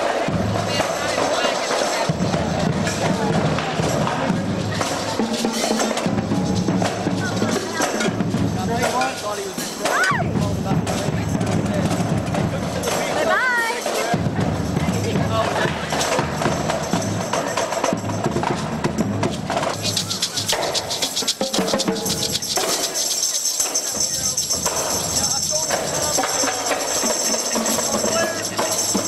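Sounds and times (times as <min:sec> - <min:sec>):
percussion group drumming: 0:00.0 - 0:29.0
fast high shaker rattle: 0:19.2 - 0:29.0.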